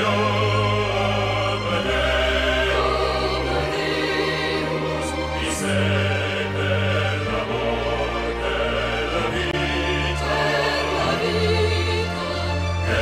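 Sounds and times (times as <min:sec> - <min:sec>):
choir singing: 0:00.0 - 0:13.0
sustained orchestral bass notes: 0:00.0 - 0:13.0.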